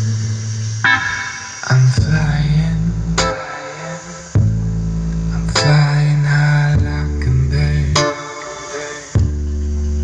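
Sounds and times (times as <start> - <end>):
bass-heavy music through speaker: 0.0 - 10.0.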